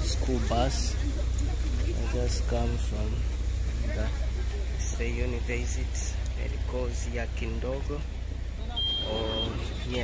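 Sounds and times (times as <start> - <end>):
bus engine idling: 0.0 - 10.0
faint voices: 0.0 - 10.0.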